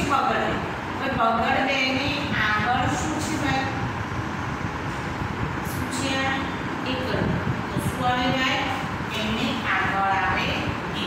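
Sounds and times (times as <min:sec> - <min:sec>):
woman speaking: 0:00.0 - 0:03.9, 0:05.7 - 0:11.0.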